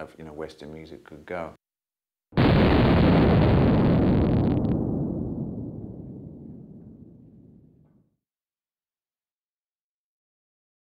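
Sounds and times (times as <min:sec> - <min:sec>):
loud explosion blast: 0:02.4 - 0:07.8.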